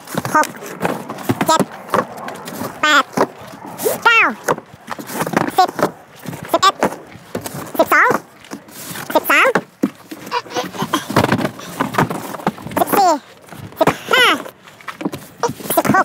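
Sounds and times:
scuffing footsteps: 0.0 - 16.0
high-pitched voice calling out: 1.4 - 1.7, 2.8 - 3.2, 3.8 - 4.5, 5.5 - 5.9, 6.5 - 6.8, 7.7 - 8.2, 9.1 - 9.6, 12.8 - 13.2, 13.8 - 14.5, 15.4 - 16.0
cardboard boxes knocked and dropped: 9.0 - 13.0.

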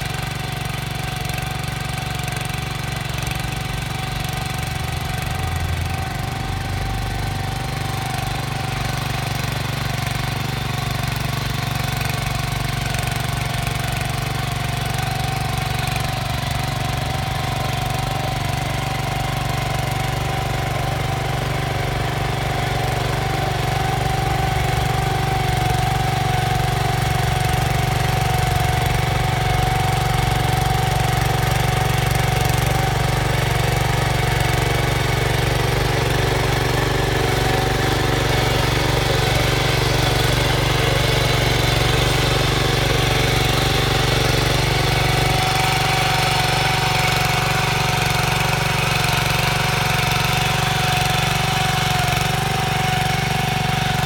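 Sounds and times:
power tiller engine running: 0.0 - 54.0.

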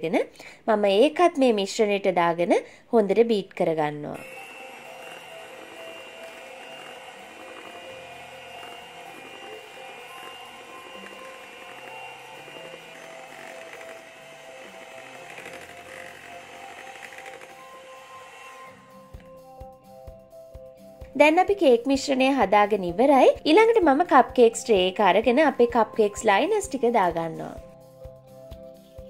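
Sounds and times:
electric hand mixer whirring: 4.2 - 19.6
background music with held notes: 4.2 - 29.0.

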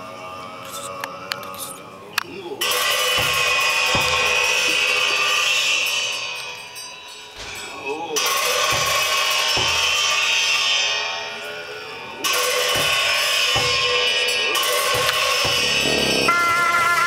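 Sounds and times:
cymbals clashing: 2.6 - 10.9, 12.2 - 17.0
drum beats: 15.0 - 16.4
sustained held tones: 15.5 - 17.0.

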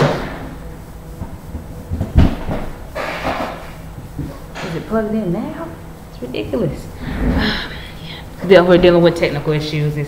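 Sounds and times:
loud thump: 0.0 - 0.6.

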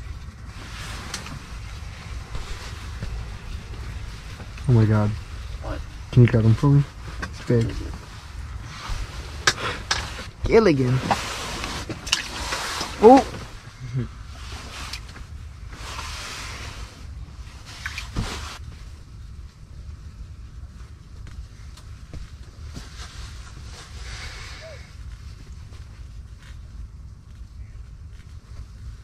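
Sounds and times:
low steady rumble: 0.0 - 29.0
soft hissing bursts: 23.0 - 25.1.

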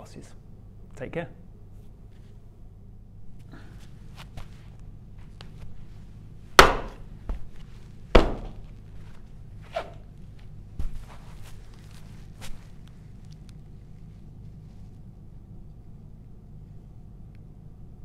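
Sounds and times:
shoe stamping on carpet: 6.6 - 9.2, 10.4 - 12.8.

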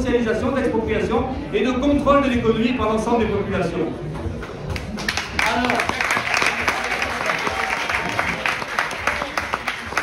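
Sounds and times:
crowd voices: 3.2 - 10.0
audience applause: 5.0 - 10.0.

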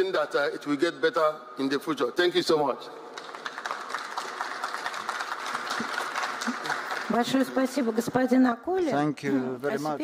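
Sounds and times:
audience applauding: 3.0 - 8.3.

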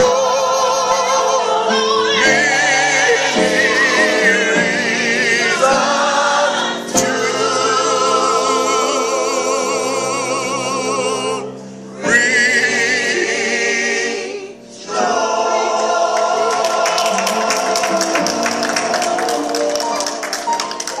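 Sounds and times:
gospel choir singing: 0.0 - 21.0.

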